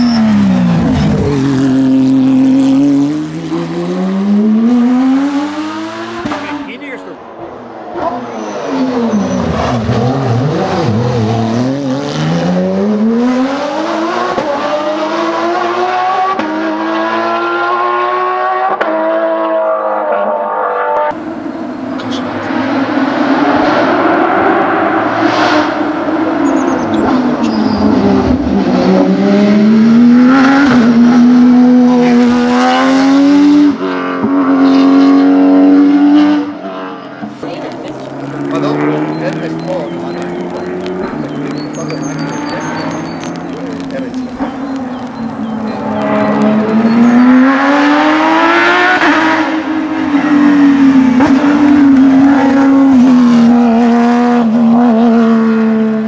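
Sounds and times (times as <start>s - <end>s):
rally car engine revving: 0.0s - 56.0s.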